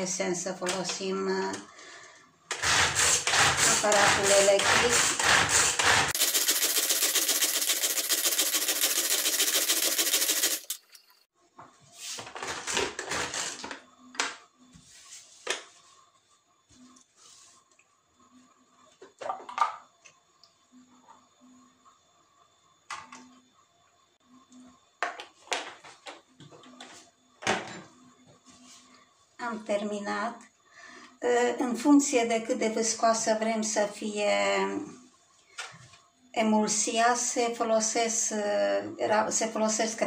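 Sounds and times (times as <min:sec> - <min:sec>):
pull-cord food chopper whirring: 0:02.5 - 0:10.8.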